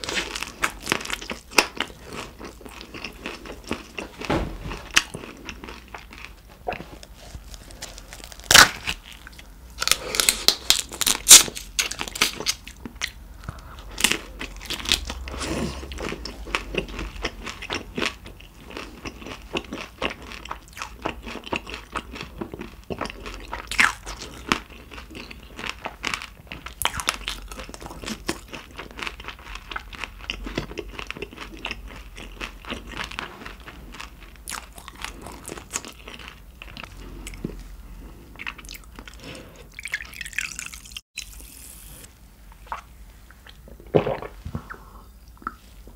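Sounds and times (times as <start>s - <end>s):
wet chewing: 4.8s - 37.7s.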